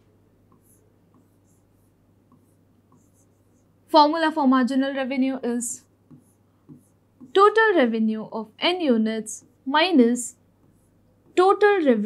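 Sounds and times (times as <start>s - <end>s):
steady low hum: 0.0s - 12.0s
stylus tapping on screen: 0.4s - 3.7s, 6.0s - 7.6s, 10.5s - 11.6s.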